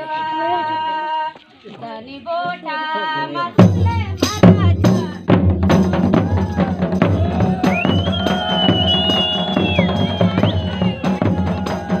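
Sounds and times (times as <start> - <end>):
drums beating: 3.5 - 12.0.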